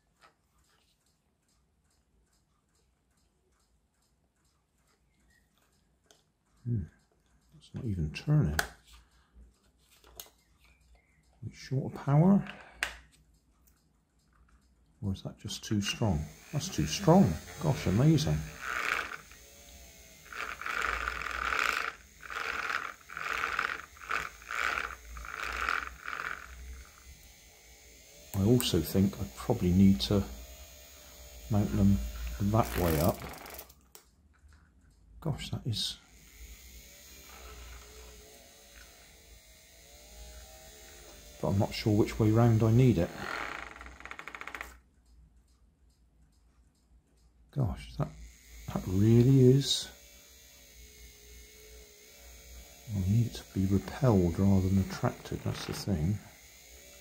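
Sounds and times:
faint ticks: 0.2s - 7.6s
toy motor buzzing and rattling: 15.7s - 33.8s, 36.0s - 44.8s, 48.1s - 57.0s.

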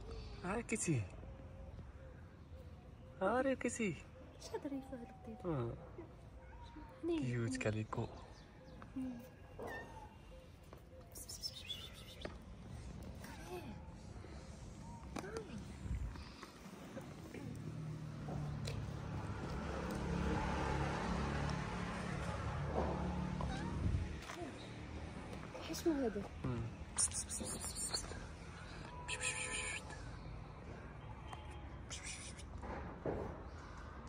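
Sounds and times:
cat meowing: 23.4s - 24.0s.

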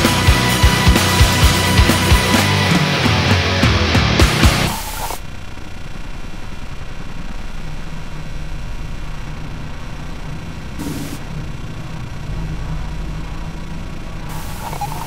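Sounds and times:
low rumbling drone: 4.3s - 15.0s
hiss bursts: 4.7s - 5.2s, 10.7s - 11.2s, 14.3s - 15.0s.

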